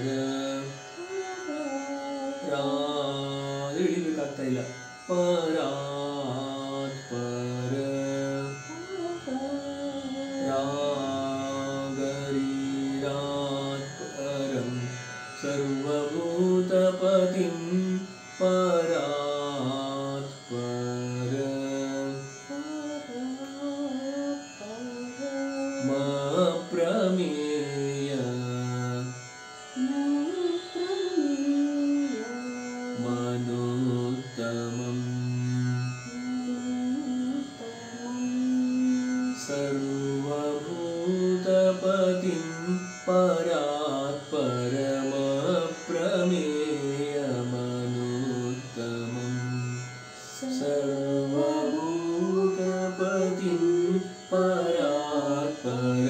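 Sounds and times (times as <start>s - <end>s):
devotional chant singing: 0.0s - 56.0s
steady drone: 0.0s - 56.0s.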